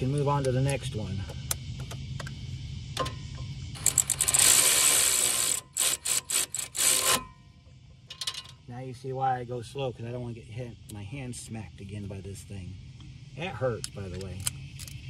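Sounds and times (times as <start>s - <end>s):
hand ratchet clicking: 3.8s - 7.3s.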